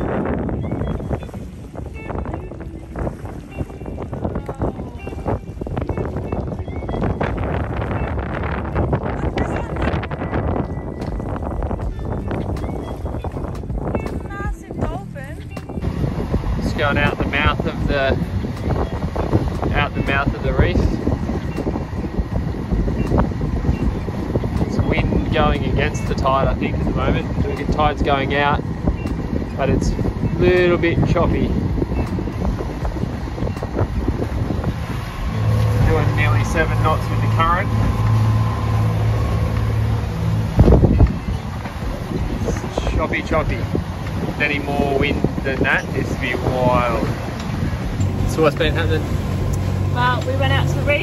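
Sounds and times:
wind buffeting microphone: 0.0 - 51.0
water slapping boat hull: 15.7 - 51.0.

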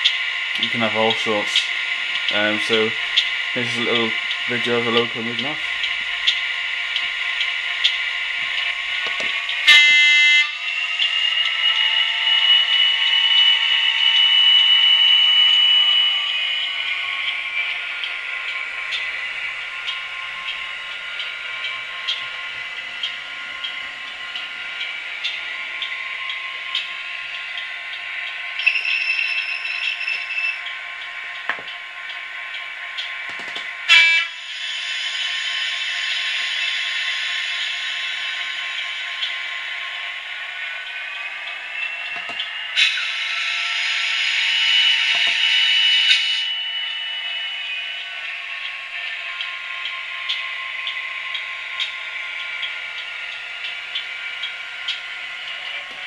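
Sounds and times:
model locomotive diesel engine: 0.0 - 56.0
locomotive horn blasts: 9.6 - 10.6, 33.9 - 34.4.

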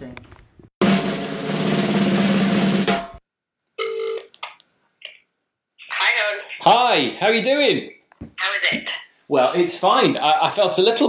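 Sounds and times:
drum roll: 0.8 - 3.2.

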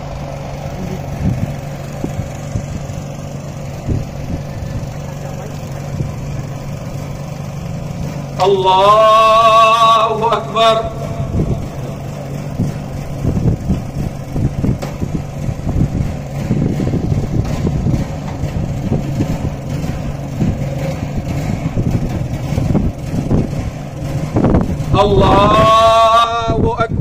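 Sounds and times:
low rumbling outdoor noise: 0.0 - 27.0.

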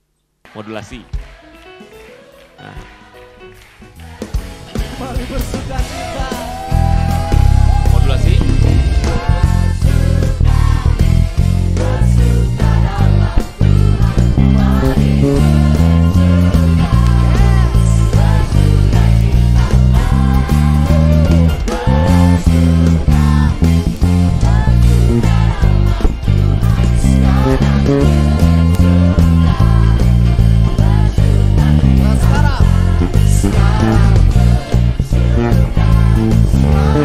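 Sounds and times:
people singing: 0.6 - 37.0
live band playing: 1.6 - 37.0
electric bass line: 4.8 - 37.0.

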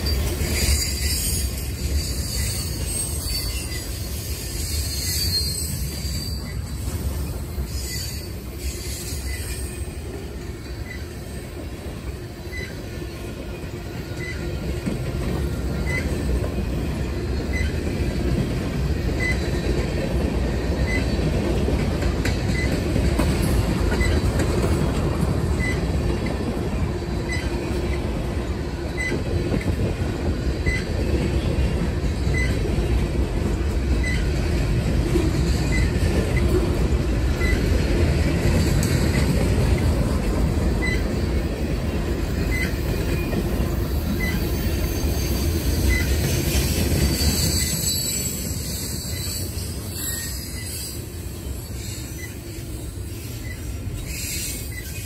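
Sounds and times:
freight train wheels rumbling: 0.0 - 55.0.

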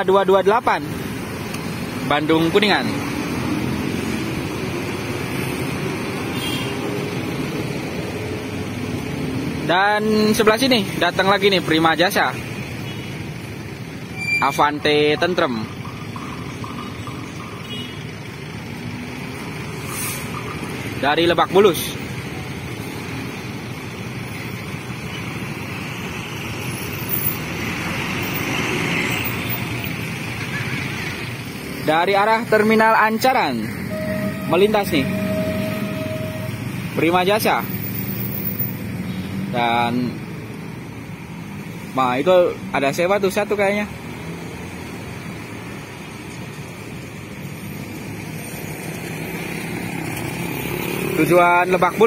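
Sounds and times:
road traffic passing: 0.0 - 52.0
bus engine approaching: 15.5 - 42.0.

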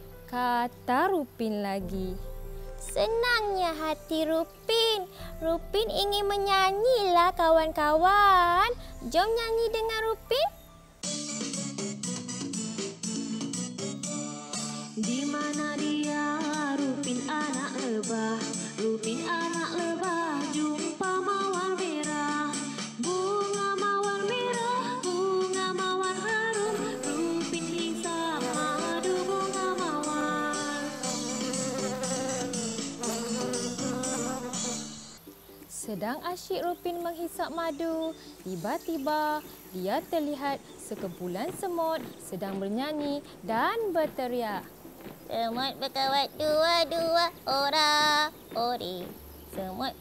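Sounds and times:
children's song: 2.8 - 10.5, 14.2 - 35.2, 35.9 - 50.0.

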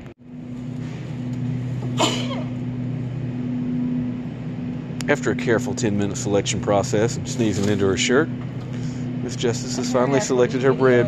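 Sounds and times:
low electrical hum: 0.0 - 11.0
woman sneezing: 2.0 - 2.6.

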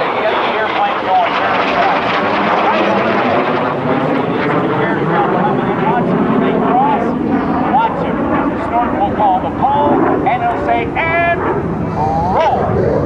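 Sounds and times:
jet engines rushing overhead: 0.0 - 13.0.

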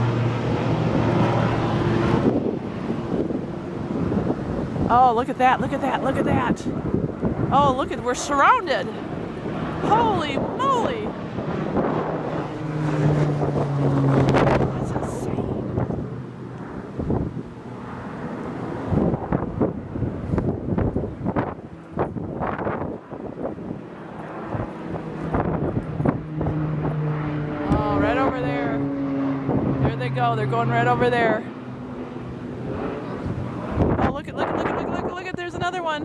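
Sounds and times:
propeller plane droning overhead: 0.0 - 36.0
wind gusting on microphone: 0.0 - 36.0.

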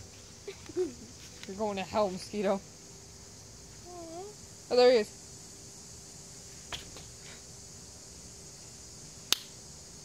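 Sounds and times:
faint steady hiss: 0.0 - 10.0
sharp click: 9.3 - 9.5.

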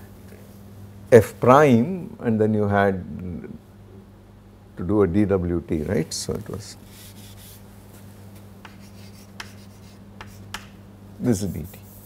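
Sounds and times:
steady low hum: 0.0 - 12.0
chalk tapping and scratching: 6.9 - 7.6, 8.6 - 12.0.

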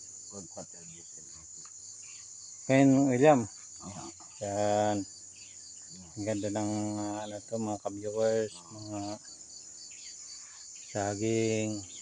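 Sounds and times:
insect chorus chirring: 0.0 - 12.0.

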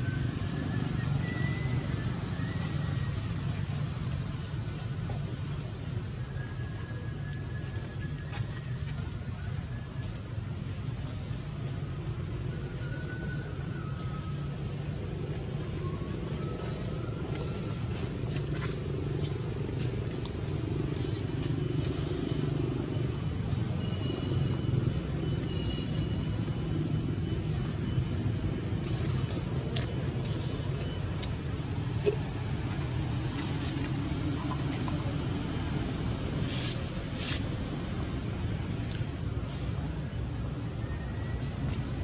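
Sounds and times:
faint high whistles: 0.0 - 3.7, 5.9 - 18.8, 40.0 - 42.0.

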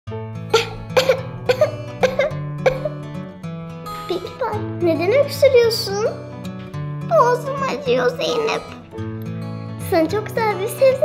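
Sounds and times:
background music: 0.1 - 11.0
short coughs: 0.6 - 3.0.

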